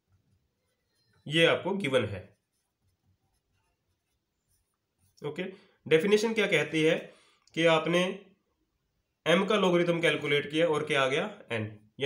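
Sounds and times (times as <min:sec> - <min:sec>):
marker writing on whiteboard: 0:01.9 - 0:05.3.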